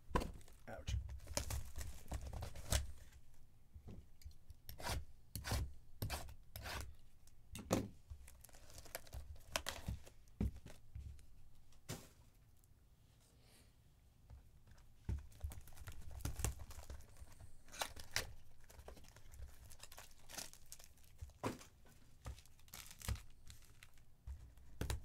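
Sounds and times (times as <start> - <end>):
cellophane ripping and crinkling: 1.2 - 3.0, 8.2 - 9.9, 15.3 - 24.1.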